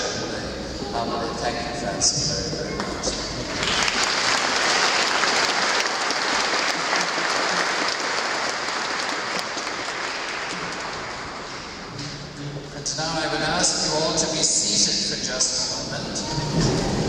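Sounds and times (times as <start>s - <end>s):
crowd clapping: 2.8s - 11.9s.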